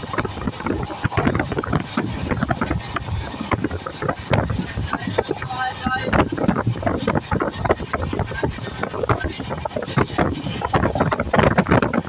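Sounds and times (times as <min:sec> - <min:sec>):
train rumbling and rattling: 0:00.0 - 0:12.0
wind on microphone: 0:00.0 - 0:12.0.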